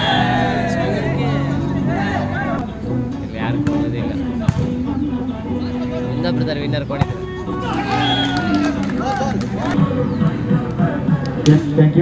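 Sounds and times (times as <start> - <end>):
background music: 0.0 - 12.0
crowd voices: 0.0 - 12.0.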